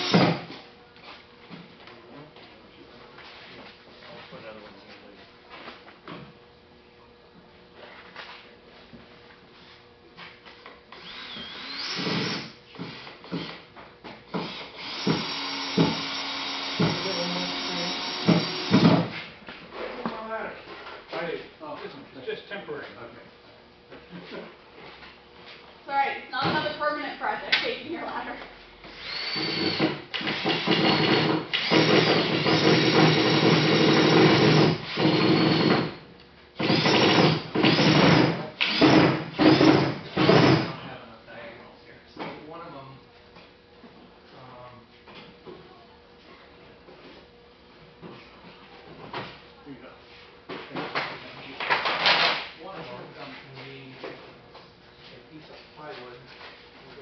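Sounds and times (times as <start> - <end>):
power tool motor whining: 0.0 - 0.5, 10.9 - 12.6, 14.4 - 19.0, 28.9 - 35.9, 36.6 - 40.7.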